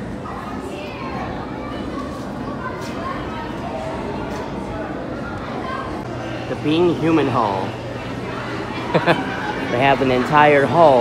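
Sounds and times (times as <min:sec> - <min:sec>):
background chatter of visitors: 0:00.0 - 0:11.0
children's voices: 0:00.0 - 0:11.0
hum of busy indoor hall: 0:00.0 - 0:11.0.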